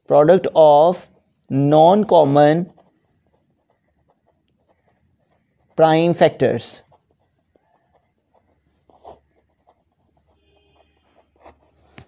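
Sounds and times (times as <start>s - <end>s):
pen scratching on paper: 0.3s - 12.0s.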